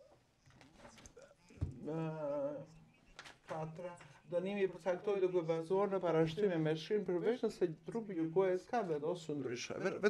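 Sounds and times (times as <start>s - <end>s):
person speaking: 1.2s - 10.0s.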